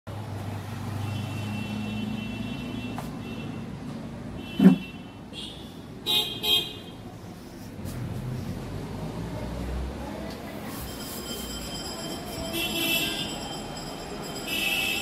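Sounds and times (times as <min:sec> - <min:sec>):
low traffic rumble: 0:00.1 - 0:15.0
car horns honking: 0:04.4 - 0:07.0, 0:12.4 - 0:13.4, 0:14.5 - 0:15.0.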